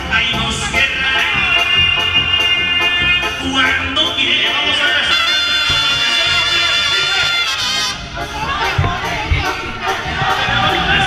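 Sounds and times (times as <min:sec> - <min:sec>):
trumpets playing held notes: 0:01.4 - 0:08.6.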